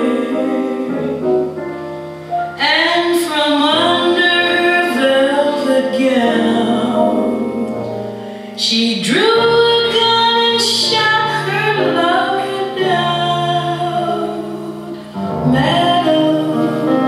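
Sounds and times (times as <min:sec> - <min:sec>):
musical accompaniment: 0:00.0 - 0:17.0
woman singing slow song: 0:02.6 - 0:08.0, 0:08.6 - 0:17.0.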